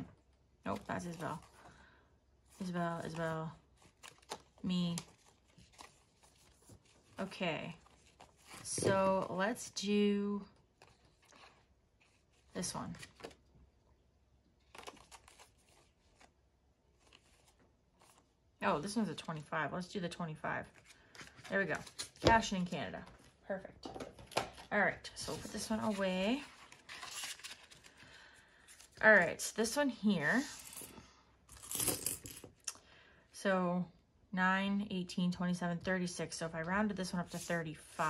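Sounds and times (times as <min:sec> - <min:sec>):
coins clinking: 0:31.5 - 0:32.5.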